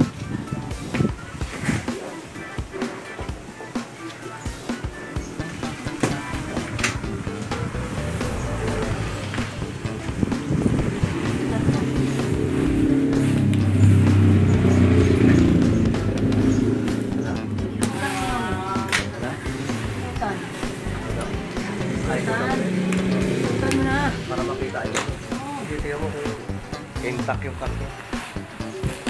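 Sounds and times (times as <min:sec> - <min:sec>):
motor vehicle passing by: 0:04.9 - 0:29.0.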